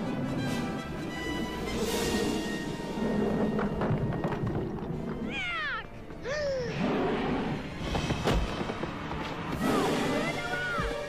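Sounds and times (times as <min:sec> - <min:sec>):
rumbling orchestral score: 0:00.0 - 0:11.0.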